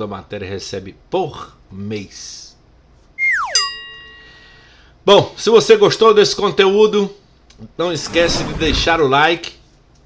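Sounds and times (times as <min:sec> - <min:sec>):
falling whistle glide: 0:03.2 - 0:03.7
struck bell chime: 0:03.5 - 0:04.5.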